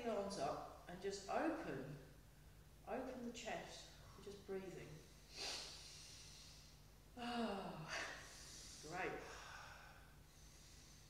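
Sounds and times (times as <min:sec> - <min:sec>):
low steady background hum: 0:00.0 - 0:11.0
person breathing: 0:05.2 - 0:06.9, 0:07.9 - 0:11.0.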